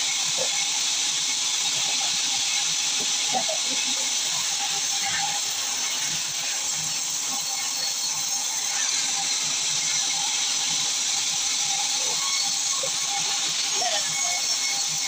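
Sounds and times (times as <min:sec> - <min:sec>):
band saw cutting log: 0:00.0 - 0:15.0.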